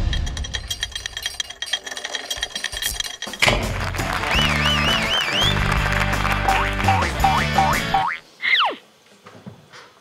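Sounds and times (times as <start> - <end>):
falling whistle: 4.2 - 5.8.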